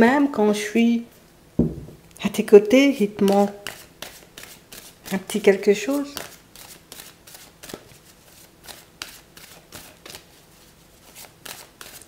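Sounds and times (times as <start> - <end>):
cards being shuffled by hand: 3.2 - 10.4, 11.0 - 12.0.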